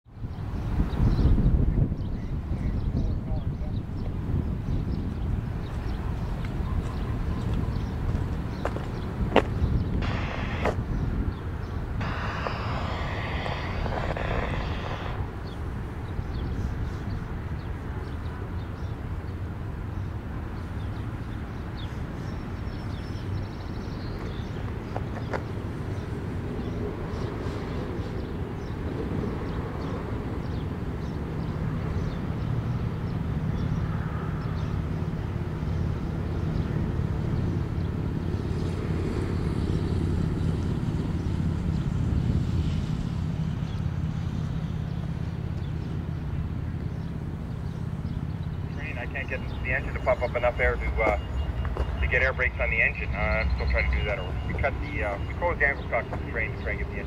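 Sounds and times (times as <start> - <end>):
distant diesel locomotive drone: 1.6 - 57.0.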